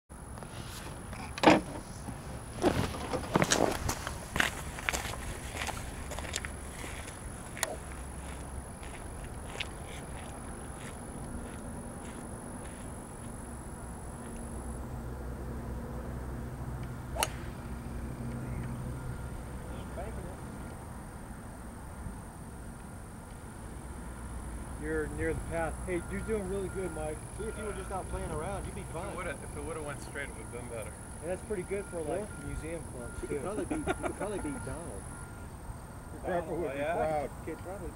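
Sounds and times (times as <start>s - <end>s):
low steady hum: 0.2s - 37.9s
golf club hitting ball: 17.1s - 17.8s.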